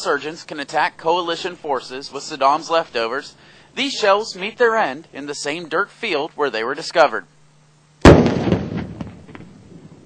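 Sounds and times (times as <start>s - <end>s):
loud explosion blast: 8.0s - 10.0s.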